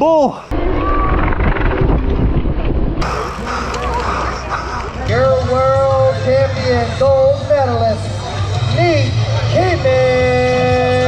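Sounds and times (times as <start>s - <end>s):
wind buffeting microphone: 0.5s - 5.1s.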